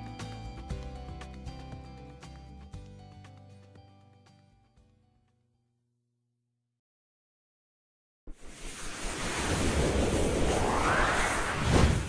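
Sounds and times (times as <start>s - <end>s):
whooshing rushing sound effect: 8.3s - 12.0s.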